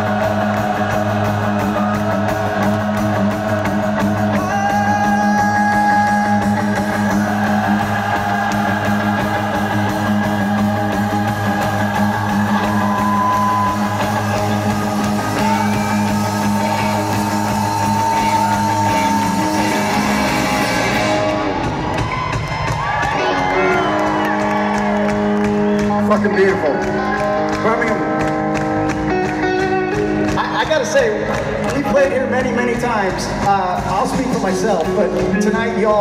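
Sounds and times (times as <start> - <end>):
live rock band playing: 0.0 - 36.0
electric guitar sustained notes: 1.0 - 22.1, 23.0 - 31.8.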